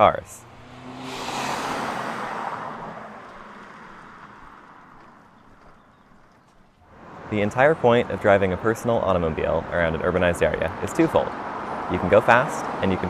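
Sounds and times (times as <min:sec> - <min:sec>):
car driving past: 0:00.3 - 0:08.2.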